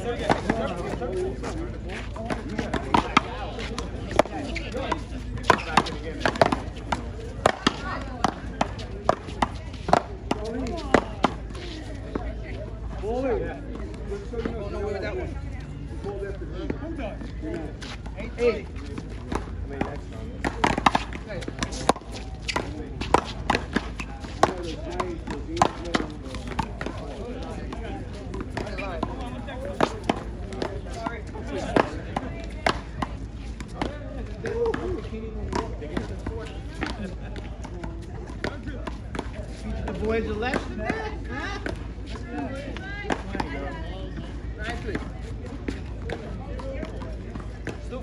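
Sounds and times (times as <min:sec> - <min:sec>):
voices talking: 0:00.0 - 0:48.0
paddles hitting rubber ball: 0:02.2 - 0:12.2, 0:19.3 - 0:37.1.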